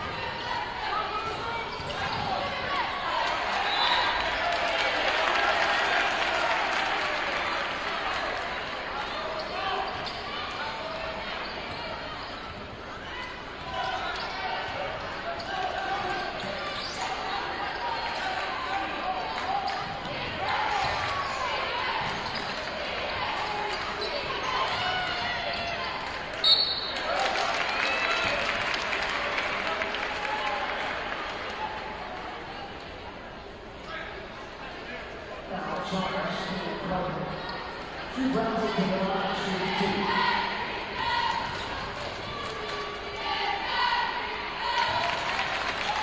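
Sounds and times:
murmur of crowd voices: 0:00.0 - 0:46.0.

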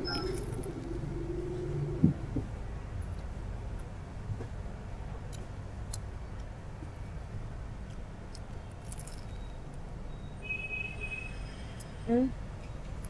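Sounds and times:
low shop rumble: 0:00.0 - 0:13.0
short high beep: 0:10.1 - 0:11.6.

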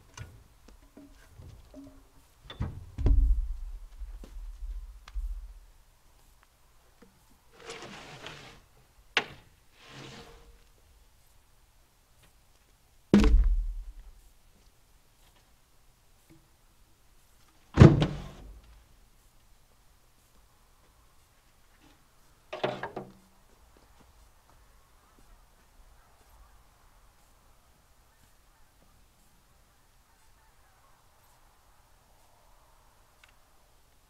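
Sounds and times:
logs scraping across flatbed: 0:07.5 - 0:10.7.

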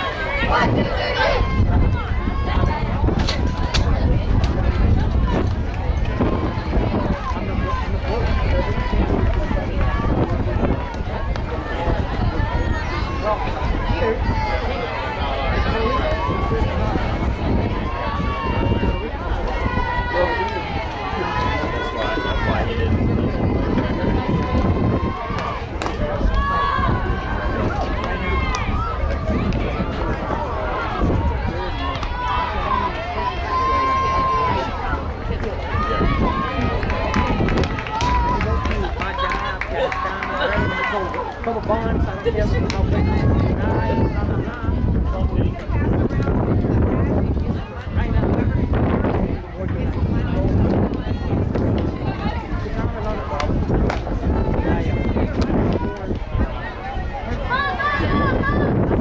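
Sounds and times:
crowd calling and cheering: 0:00.0 - 0:59.0
wind rumble on microphone: 0:00.0 - 0:59.0.

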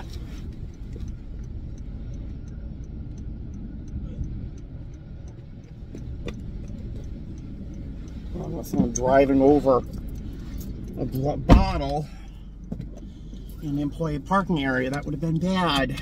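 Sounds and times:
low car rumble: 0:00.0 - 0:16.0.

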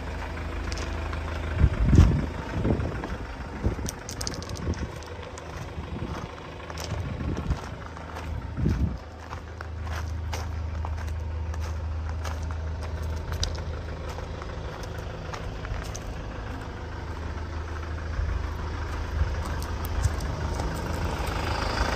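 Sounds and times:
van engine idling: 0:00.0 - 0:21.9.

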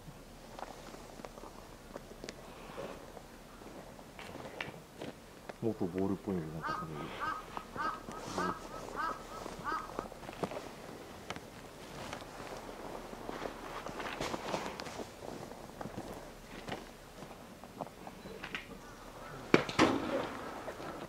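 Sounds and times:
bird calling short calls: 0:06.6 - 0:10.1
scuffs and crunches in snow: 0:08.1 - 0:16.8.

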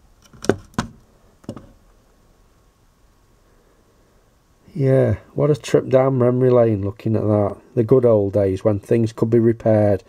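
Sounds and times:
handling knocks and clicks: 0:00.2 - 0:01.8.

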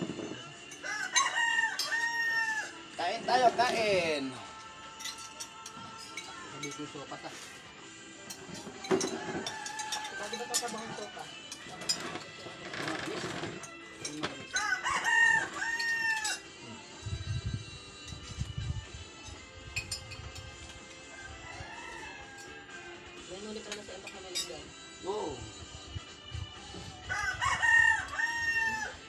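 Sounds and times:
rooster crowing: 0:00.8 - 0:02.8, 0:09.0 - 0:10.8, 0:14.5 - 0:16.5, 0:21.1 - 0:23.2, 0:27.0 - 0:29.0.

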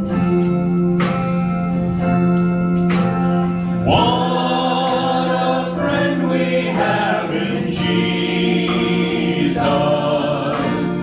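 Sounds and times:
guitar accompaniment: 0:00.0 - 0:11.0
group singing in harmony: 0:03.8 - 0:11.0.

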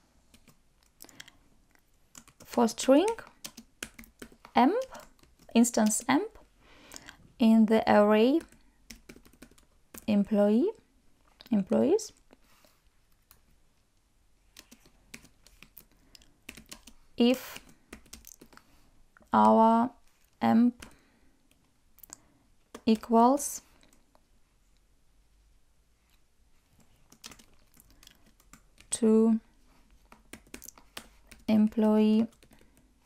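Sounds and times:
computer keyboard keystrokes: 0:02.1 - 0:06.1, 0:08.3 - 0:10.1, 0:14.6 - 0:18.6, 0:27.1 - 0:28.9, 0:30.1 - 0:32.9.

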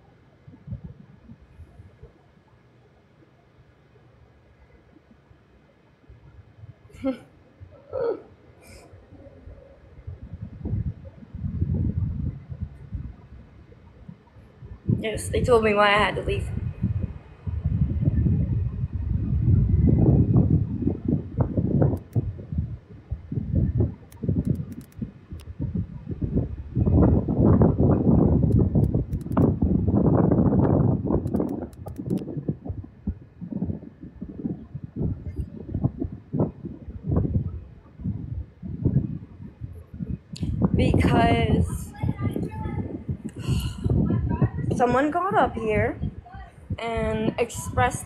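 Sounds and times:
rumbling and rustling on microphone: 0:00.0 - 0:48.0
faint clicks: 0:21.9 - 0:22.3, 0:24.0 - 0:25.5, 0:28.5 - 0:29.5, 0:30.6 - 0:32.3.

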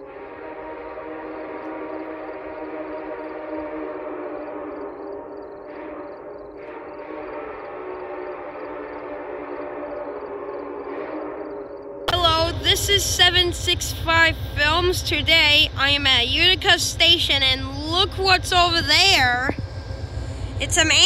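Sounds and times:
locomotive air horn chord: 0:00.0 - 0:21.0.

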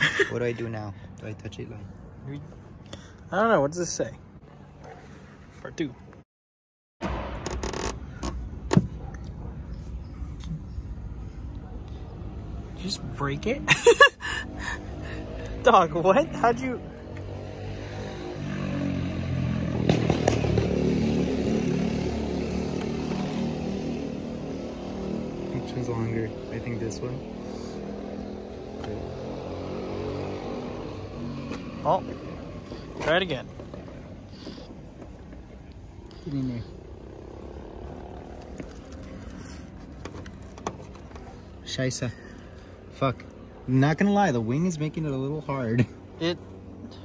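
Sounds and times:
engine humming steadily: 0:08.1 - 0:47.0.

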